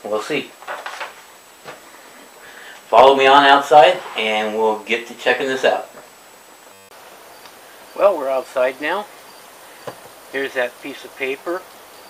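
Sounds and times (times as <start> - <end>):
background hiss: 0.0 - 12.0
faint outdoor ambience: 0.0 - 12.0
brief buzzing glitch: 6.6 - 7.0.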